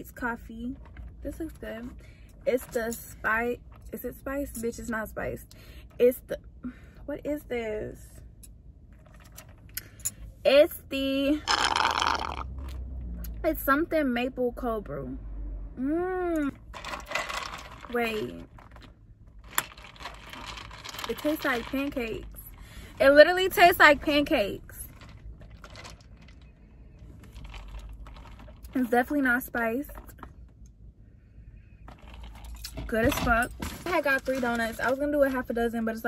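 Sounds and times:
sipping through a straw: 11.4 - 12.5
car cabin rumble: 31.8 - 36.0.

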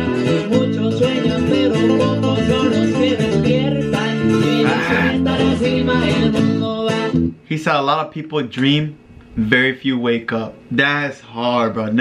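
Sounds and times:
acoustic guitar picking: 0.0 - 7.4.

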